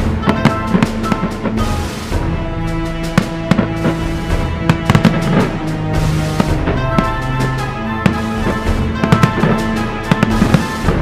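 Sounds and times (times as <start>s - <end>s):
fireworks bangs and crackles: 0.0s - 11.0s
loud music with held notes: 0.0s - 11.0s.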